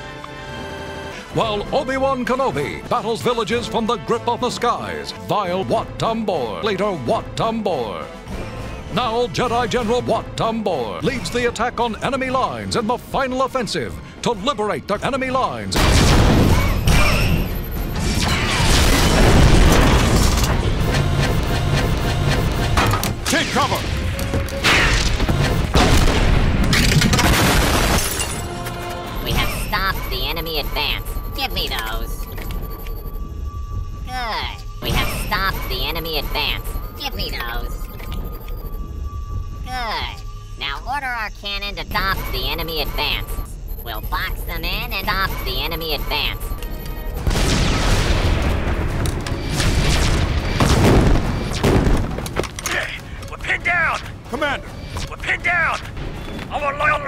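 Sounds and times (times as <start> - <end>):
orchestral music: 0.0 - 15.4, 19.2 - 41.0
big explosions: 17.9 - 28.0, 47.1 - 52.4
heavy low explosions: 47.2 - 52.3.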